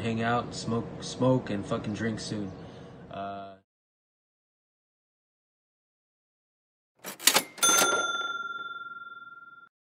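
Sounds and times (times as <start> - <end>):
bright bell ding: 7.3 - 9.7.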